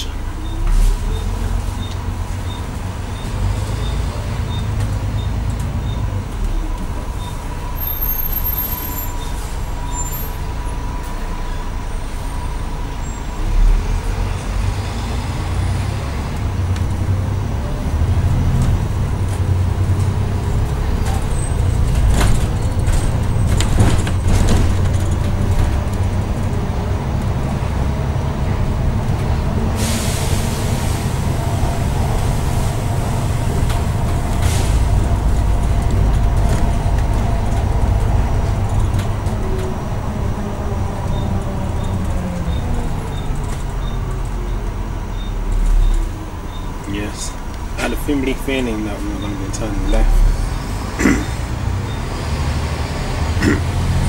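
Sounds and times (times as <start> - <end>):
bus engine rumble: 0.0 - 54.0
air brake hiss: 29.8 - 31.2.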